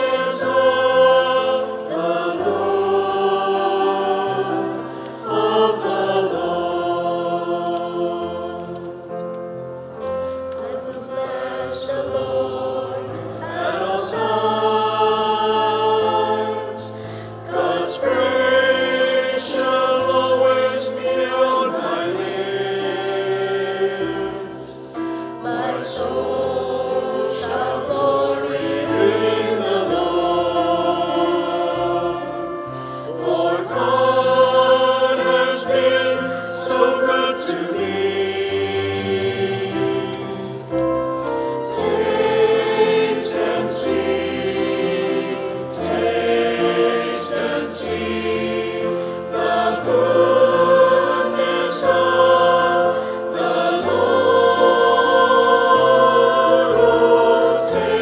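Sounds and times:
choir singing a hymn: 0:00.0 - 0:58.0
keyboard accompaniment: 0:00.0 - 0:58.0.

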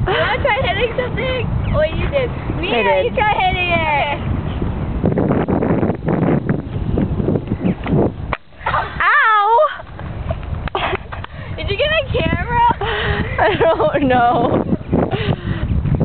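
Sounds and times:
girls laughing: 0:00.0 - 0:01.5, 0:10.7 - 0:15.4.

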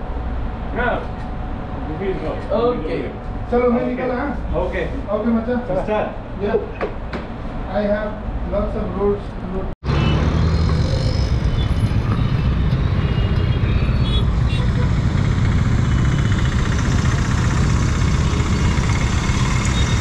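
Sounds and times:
motorcycle engine running: 0:10.7 - 0:20.0.

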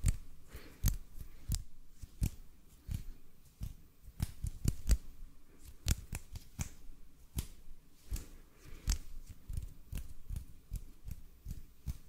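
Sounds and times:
hands patting together: 0:00.0 - 0:12.0
hands rubbing: 0:00.0 - 0:12.0.

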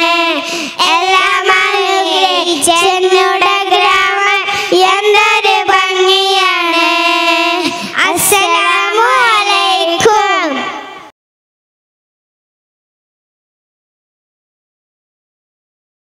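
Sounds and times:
girls singing into microphones: 0:00.0 - 0:10.7.

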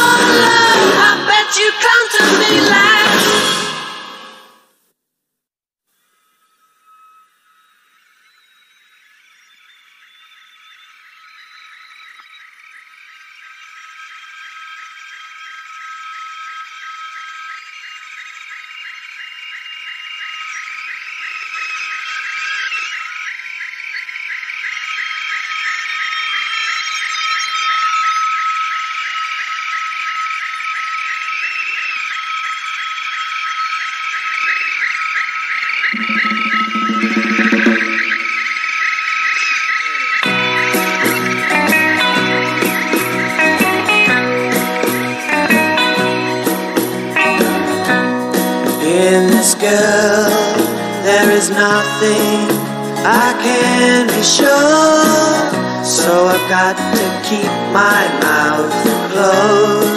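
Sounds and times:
high rapidly pulsing drone: 0:36.0 - 0:38.7.

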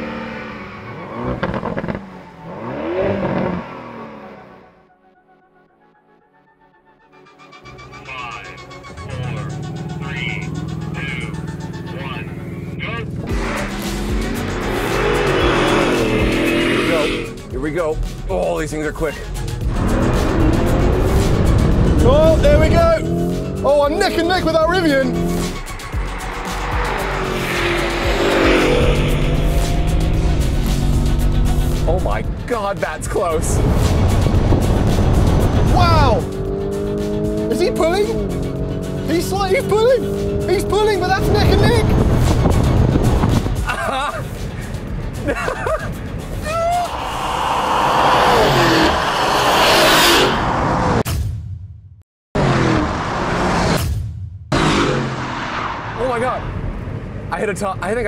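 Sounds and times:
car engine accelerating: 0:00.0 - 0:05.2, 0:07.2 - 0:18.2, 0:19.0 - 0:43.7, 0:46.1 - 0:51.1
background music: 0:04.3 - 0:49.2.

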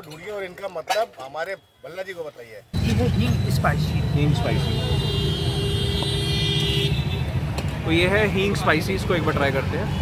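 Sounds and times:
road traffic rumble: 0:02.7 - 0:10.0
vehicle horn: 0:04.5 - 0:07.3.

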